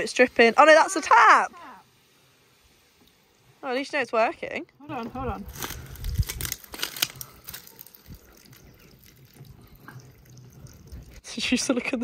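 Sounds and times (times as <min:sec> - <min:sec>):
water trickling from tap: 0:07.8 - 0:11.4.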